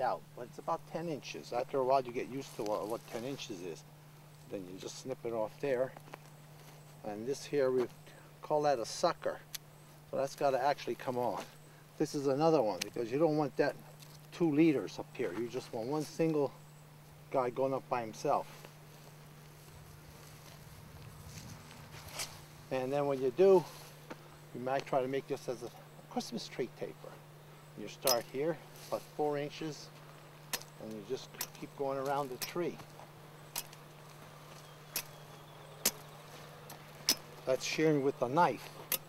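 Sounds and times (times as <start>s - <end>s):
steady low hum: 0.0s - 39.0s
knife chopping branch tips: 30.4s - 36.1s.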